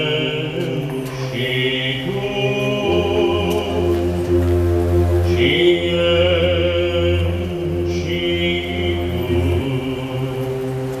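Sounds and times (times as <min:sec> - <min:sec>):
low held drone: 0:00.0 - 0:11.0.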